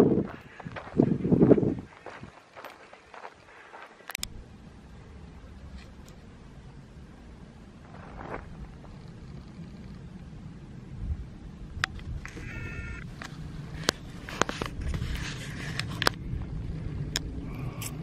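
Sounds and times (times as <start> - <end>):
wind rumble on microphone: 0.0 - 2.7, 4.2 - 18.0
footsteps crunching on dry trail: 0.0 - 4.2, 7.8 - 9.0.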